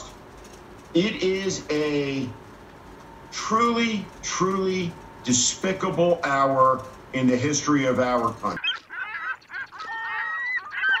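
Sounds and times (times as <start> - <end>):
bird calls: 8.5 - 11.0.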